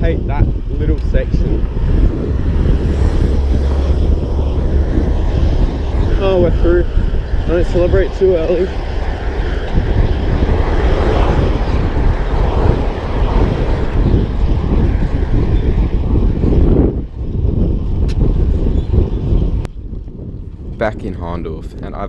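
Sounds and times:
road and tyre noise: 0.0 - 22.0
wind rumble on microphone: 0.0 - 22.0.

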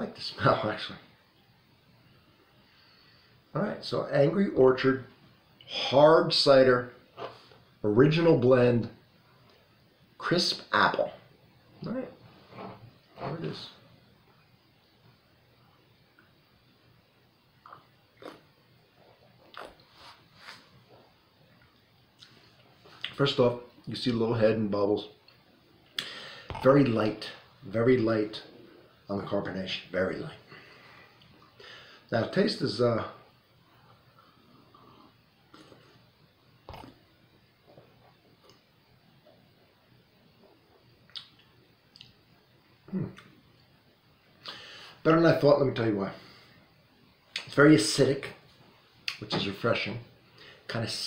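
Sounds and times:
lip smacks: 17.6 - 18.5, 19.4 - 19.9, 36.7 - 37.0, 41.1 - 42.2
tongue clicks: 36.7 - 37.0, 41.1 - 42.2
man humming hmm: 42.9 - 43.2.

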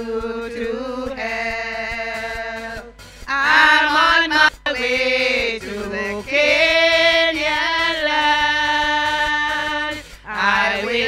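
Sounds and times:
women singing a hymn: 0.0 - 11.0.

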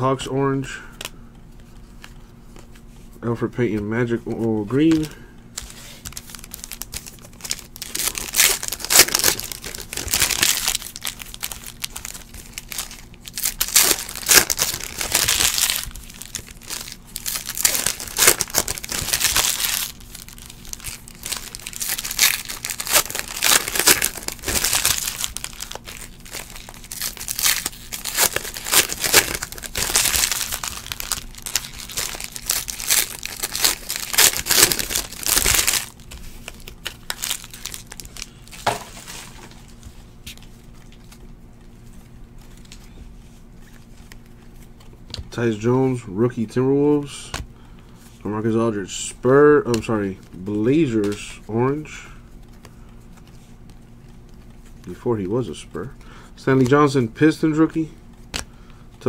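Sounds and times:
foil wrappers tearing and crinkling: 4.8 - 41.3.

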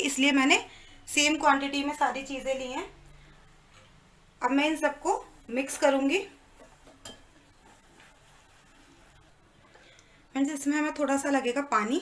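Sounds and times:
whisk stirring in a glass bowl: 6.6 - 9.9.

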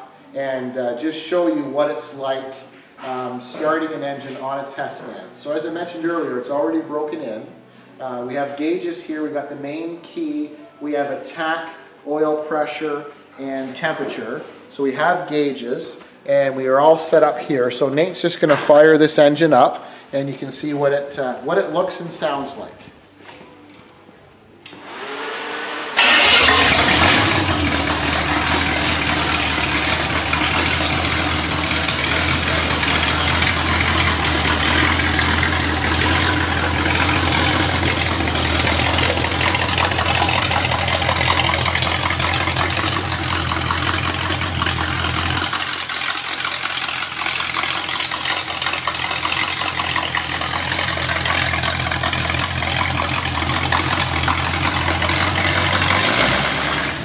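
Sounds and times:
starter motor cranking: 24.8 - 57.0
engine idling loudly: 25.9 - 57.0.

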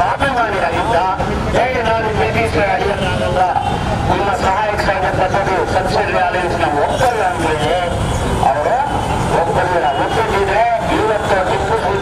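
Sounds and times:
man speaking over microphone: 0.0 - 12.0.

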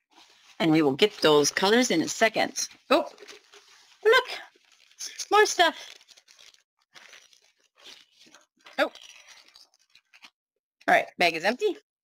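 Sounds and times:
plastic bag rustling and crinkling: 0.1 - 10.4.

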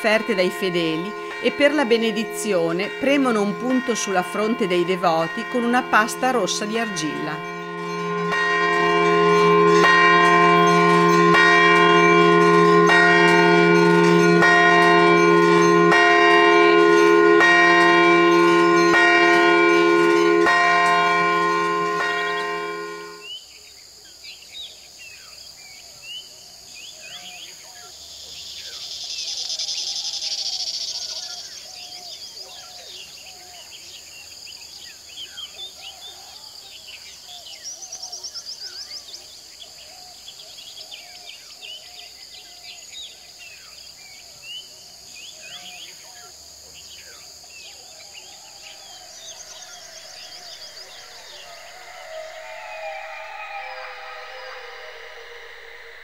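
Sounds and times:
birds chirping: 0.0 - 23.2, 48.2 - 56.0
temple bells ringing: 0.0 - 23.3, 47.8 - 56.0
insects chirping: 0.0 - 56.0.

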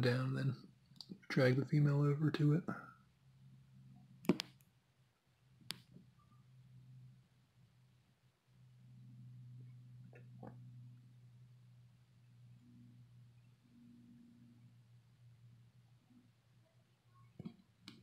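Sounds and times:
faint low hum: 0.0 - 18.0.

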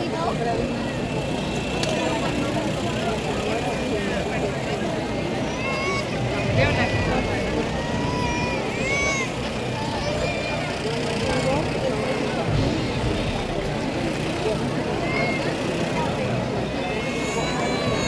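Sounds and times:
crowd chatter: 0.0 - 18.0.

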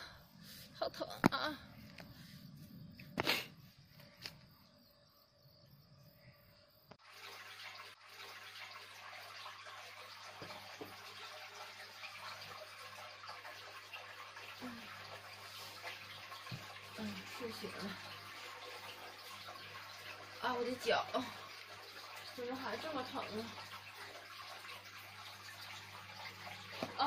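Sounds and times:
water running from tap: 7.0 - 27.0.

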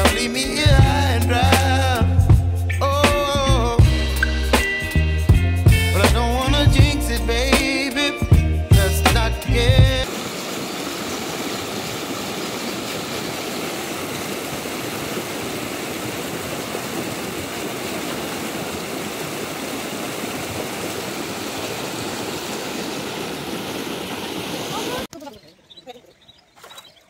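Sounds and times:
stream rushing over rocks: 10.0 - 25.1.

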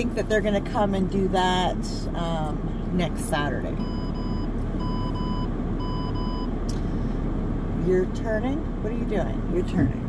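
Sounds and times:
idling car cabin hum: 0.0 - 10.0
short electronic beeps: 3.8 - 6.5.

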